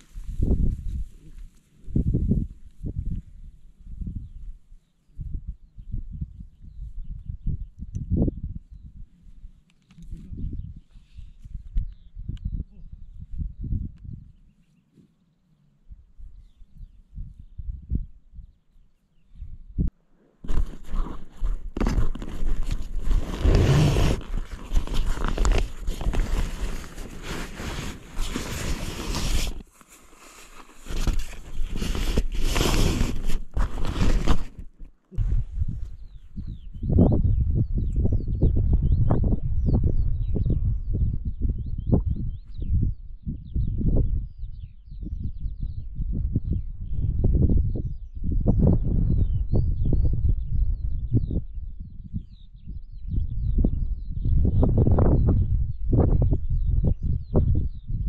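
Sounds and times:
wind buffeting microphone: 0.0s - 14.5s, 15.9s - 18.6s, 19.3s - 29.6s, 30.9s - 58.0s
tent fabric rustling: 20.4s - 34.7s.

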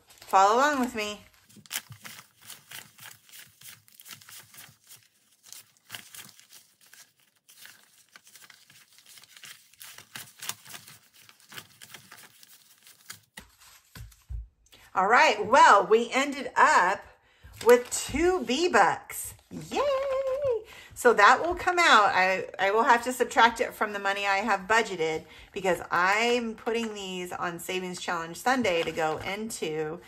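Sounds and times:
paper bills being counted: 0.1s - 13.8s.

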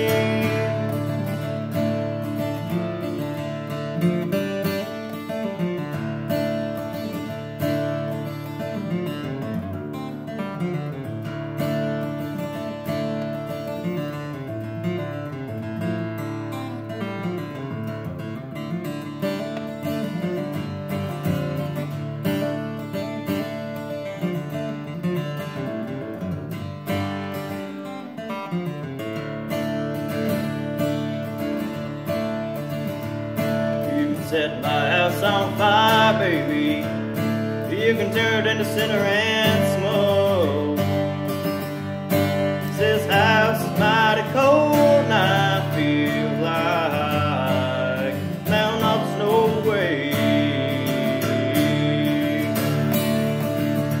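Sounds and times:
acoustic guitar strummed: 0.0s - 54.0s.

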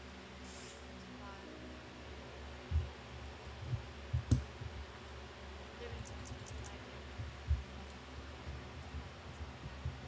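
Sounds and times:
faint steady background noise: 0.0s - 10.0s
soft low thumps: 2.7s - 4.9s, 7.1s - 7.8s, 8.4s - 10.0s.

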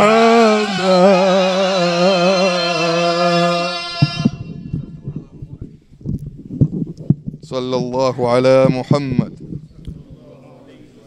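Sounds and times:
man chanting into microphone: 0.0s - 5.7s.

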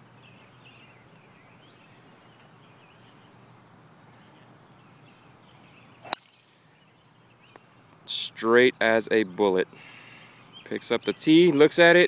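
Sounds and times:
golf club striking ball: 6.0s - 6.7s.

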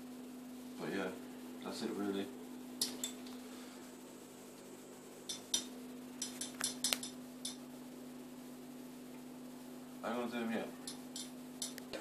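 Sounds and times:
steady low hum: 0.0s - 12.0s
feeding tongs clicking: 5.3s - 7.6s, 10.8s - 11.9s.

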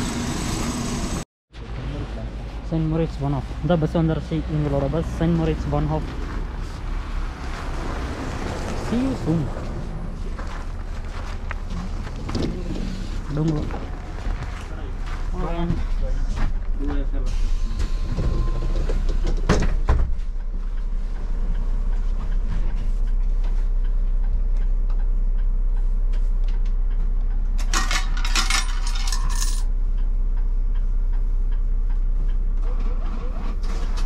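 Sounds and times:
bus engine rumble: 0.0s - 28.9s, 29.7s - 34.0s.

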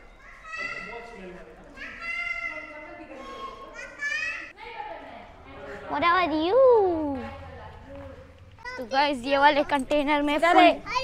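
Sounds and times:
children calling out and chattering: 0.0s - 11.0s.

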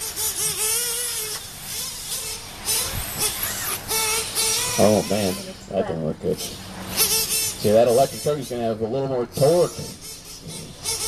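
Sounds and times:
electric motor whine: 0.0s - 11.0s
model engine high-pitched buzz: 0.0s - 11.0s.

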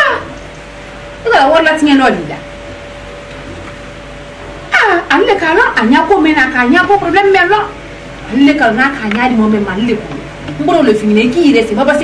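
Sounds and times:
faint steady hum: 0.0s - 12.0s
woman speaking loudly: 1.2s - 2.4s, 4.7s - 12.0s.

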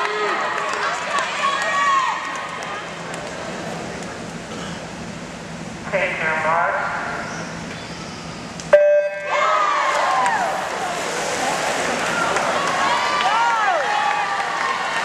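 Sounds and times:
people yelling and cheering: 0.0s - 3.0s, 9.1s - 15.0s.

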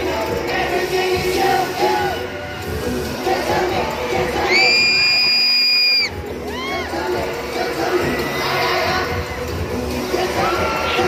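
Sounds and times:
shrill scream: 4.4s - 7.0s.

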